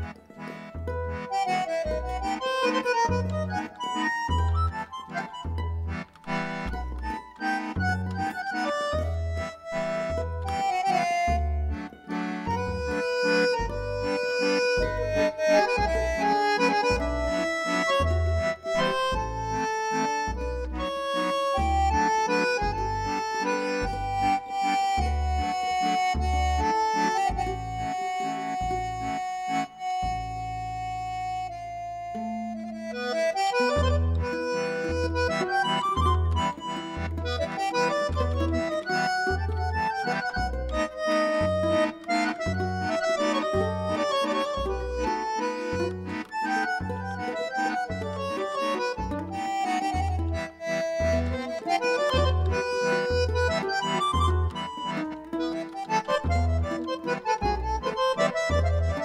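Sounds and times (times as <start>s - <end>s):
accordion playing melody: 0.0s - 59.0s
mandolin accompanying: 0.0s - 59.0s.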